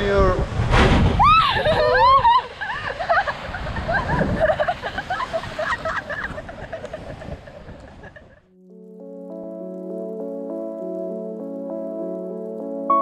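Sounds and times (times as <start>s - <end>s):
soft music with sustained chords: 8.5s - 13.0s.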